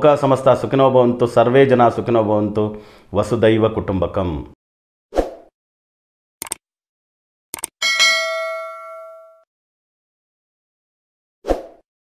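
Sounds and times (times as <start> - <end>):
bright notification bell ding: 7.8 - 9.4.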